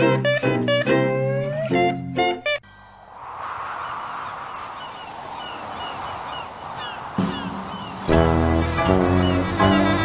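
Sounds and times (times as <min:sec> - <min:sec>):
music: 0:00.0 - 0:02.6, 0:08.1 - 0:10.0
surf washing: 0:03.0 - 0:08.8
seabird cries: 0:03.8 - 0:08.1.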